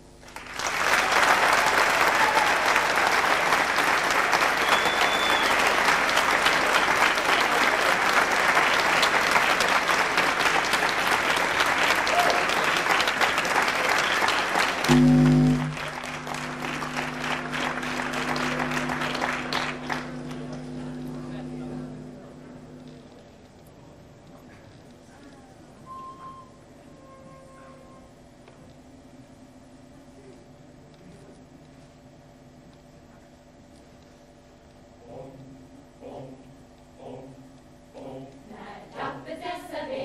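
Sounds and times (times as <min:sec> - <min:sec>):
audience applauding: 0:00.2 - 0:22.0
steady low tone: 0:14.8 - 0:24.3.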